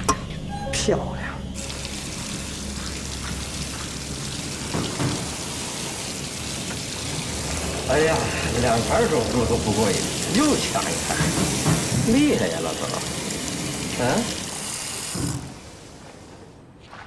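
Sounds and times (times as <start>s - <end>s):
water running from taps: 1.6s - 16.4s.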